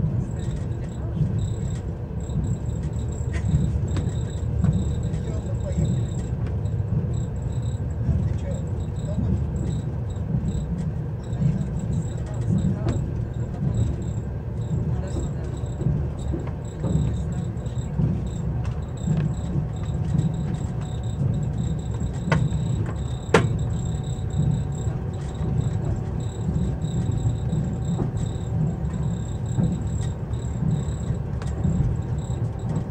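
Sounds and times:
train wheels rumbling: 0.0 - 32.9.

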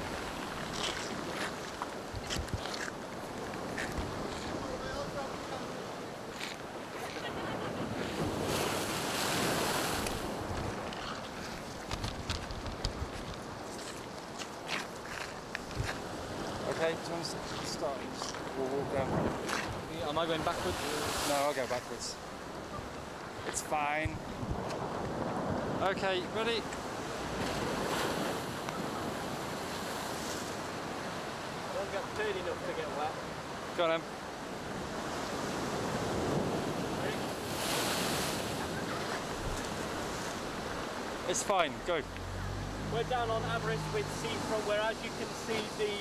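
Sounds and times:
wind on microphone: 0.0 - 5.6, 6.2 - 14.0, 15.1 - 16.6, 17.4 - 19.9, 24.0 - 25.8
wind: 0.0 - 46.0
storm surf breaking: 7.3 - 10.9, 16.0 - 22.6, 23.5 - 46.0
seawater washing across paving: 36.2 - 46.0.

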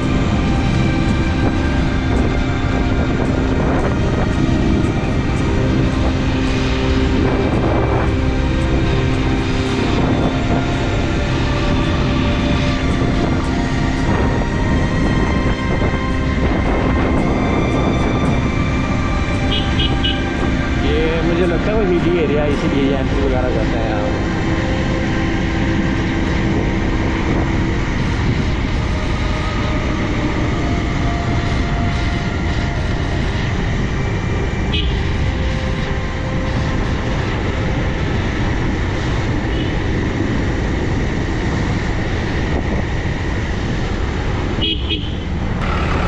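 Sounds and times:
wind rush on microphone: 0.0 - 46.0.

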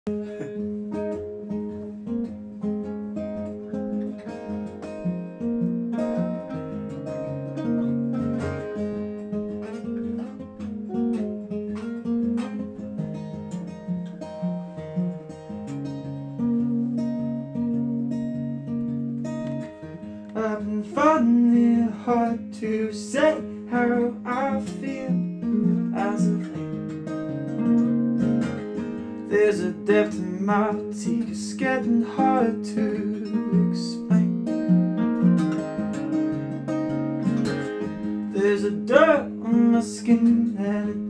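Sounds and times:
acoustic guitar picking: 0.1 - 41.0.

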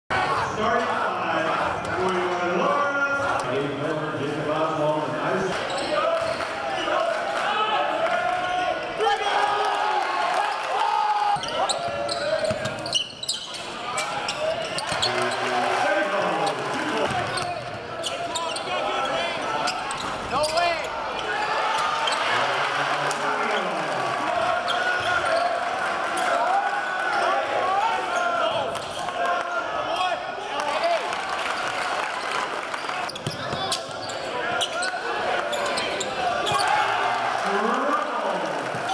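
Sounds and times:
crowd voices and chatter: 0.1 - 38.9
basketball bouncing on court: 11.3 - 12.9.

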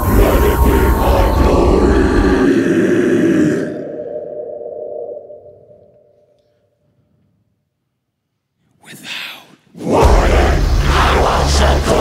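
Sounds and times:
choir of growling voices: 0.0 - 6.0, 9.7 - 12.0.

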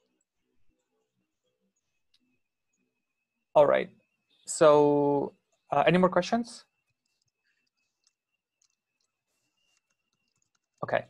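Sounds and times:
faint clicks: 6.8 - 11.0.

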